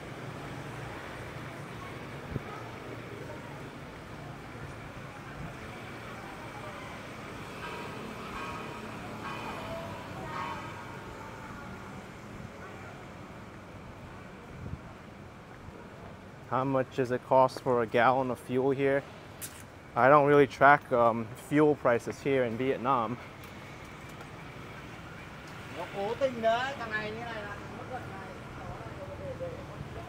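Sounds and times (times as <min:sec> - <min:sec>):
city street traffic hum: 0:00.0 - 0:30.0
voices passing: 0:00.0 - 0:30.0.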